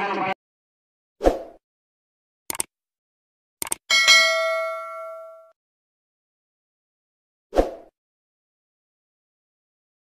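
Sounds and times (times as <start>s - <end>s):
button clicks: 3.6s - 3.8s
bell ding: 3.9s - 5.6s.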